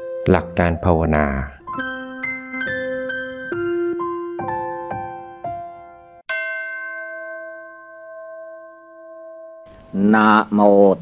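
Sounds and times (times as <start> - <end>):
bell-like chime ringing: 6.3 - 10.3.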